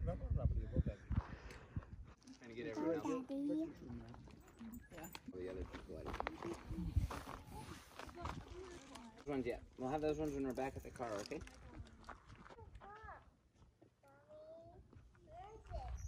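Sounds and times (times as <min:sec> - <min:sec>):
wind buffeting microphone: 0:00.0 - 0:02.1, 0:06.6 - 0:08.7.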